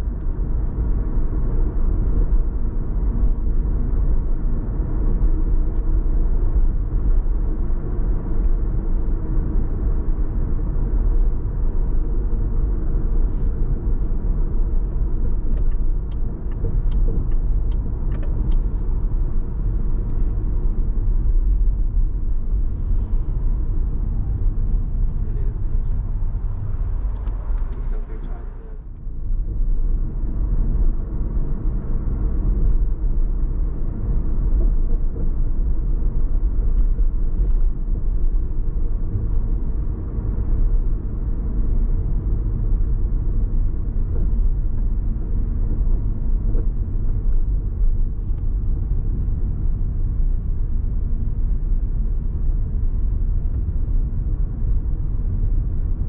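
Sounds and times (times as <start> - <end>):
car tyre and engine rumble: 0.0 - 56.0.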